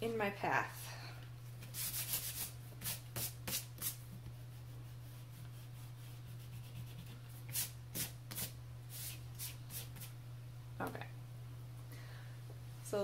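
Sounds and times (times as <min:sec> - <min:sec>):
eraser rubbing on paper: 0:01.7 - 0:10.1.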